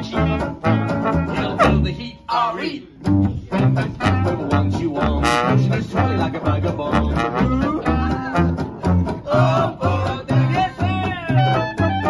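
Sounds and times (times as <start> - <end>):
banjo strumming: 0.0 - 2.1, 3.0 - 12.0
plucked double bass: 0.0 - 2.2, 2.9 - 12.0
swing band playing: 0.0 - 2.2, 2.9 - 12.0.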